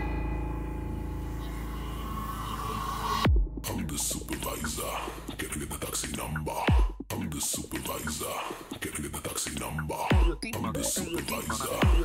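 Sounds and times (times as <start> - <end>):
held synth chord: 0.0 - 3.4
noisy synth riser: 0.0 - 6.5
low bass drone: 0.0 - 8.2, 9.1 - 12.0.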